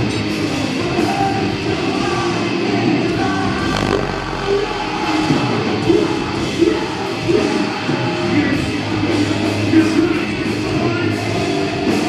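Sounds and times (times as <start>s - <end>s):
metalcore band playing live: 0.0s - 12.0s
deep sustained bass drop: 3.4s - 6.5s.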